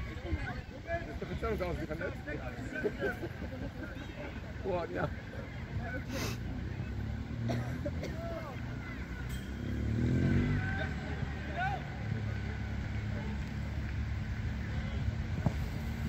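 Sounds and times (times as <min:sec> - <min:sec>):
distant shouts of players: 0:08.0 - 0:13.4.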